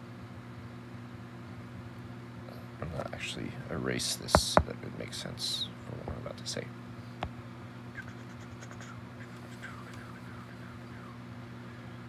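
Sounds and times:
steady low hum: 0:00.0 - 0:12.0
stylus scratching on glass: 0:08.0 - 0:10.6.

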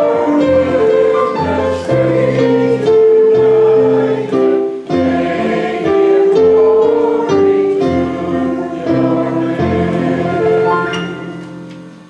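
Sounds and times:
digital keyboard hymn chords: 0:00.0 - 0:12.0.

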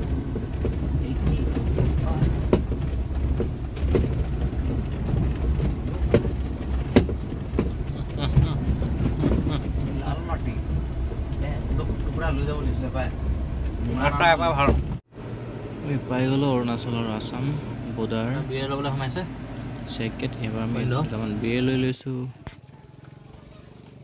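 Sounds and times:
vehicle knocks and rattles: 0:00.0 - 0:15.0
engine and road rumble: 0:00.0 - 0:24.0.

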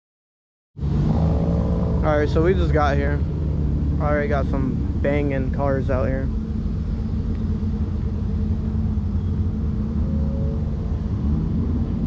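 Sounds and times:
car engines idling: 0:00.8 - 0:12.0.

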